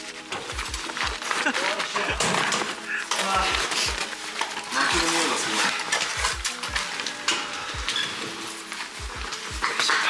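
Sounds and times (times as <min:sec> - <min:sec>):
crunching footsteps: 0:00.0 - 0:10.0
faint background music: 0:00.0 - 0:10.0.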